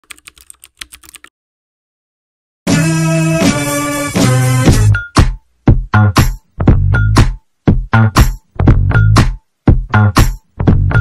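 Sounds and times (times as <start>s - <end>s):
quick keyboard keystrokes: 0.0s - 1.3s.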